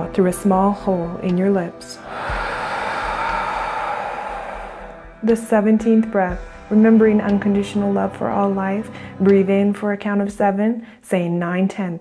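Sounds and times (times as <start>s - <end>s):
breath blown out through lips: 2.0s - 5.2s.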